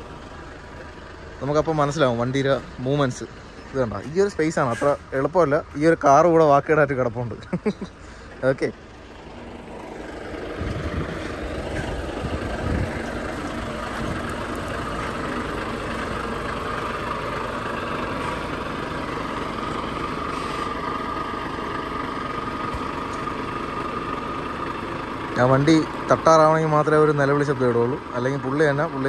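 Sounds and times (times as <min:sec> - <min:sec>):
truck diesel engine running: 0:00.0 - 0:29.0.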